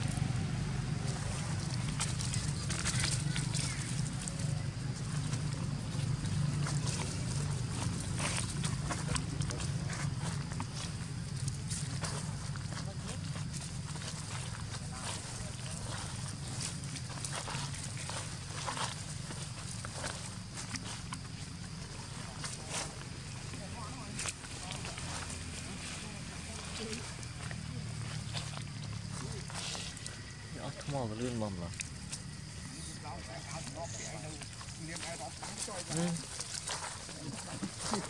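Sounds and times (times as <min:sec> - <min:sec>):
low hum: 0:00.0 - 0:30.9.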